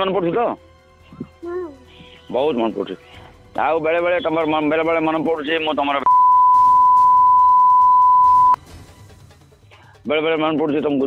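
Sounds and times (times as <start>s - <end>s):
censor bleep: 6.1s - 8.6s.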